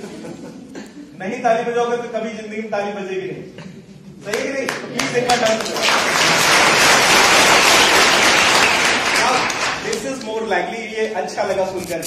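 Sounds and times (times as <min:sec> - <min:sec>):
audience applauding: 0:04.3 - 0:10.3.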